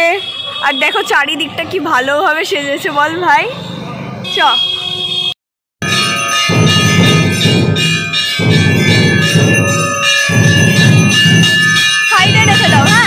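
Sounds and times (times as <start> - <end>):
low rhythmic beat: 5.8 - 13.0
temple bells ringing: 5.8 - 13.0.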